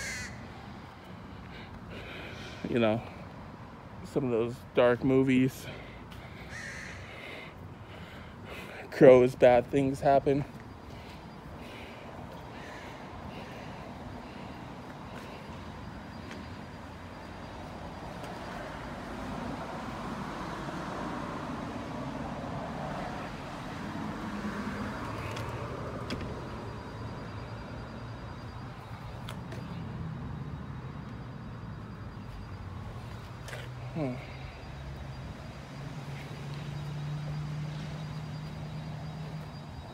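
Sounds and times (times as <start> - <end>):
cars passing by: 0.0 - 39.9.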